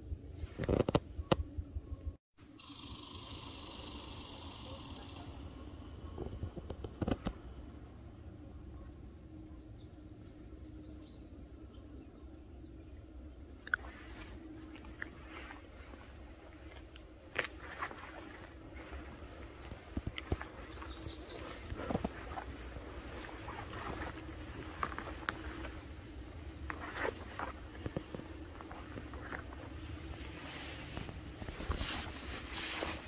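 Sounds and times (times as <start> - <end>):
faint steady hum: 0.0 - 33.0
low wind rumble: 5.4 - 33.0
handling clicks and rustles: 13.7 - 33.0
high bird chirp: 20.2 - 24.0.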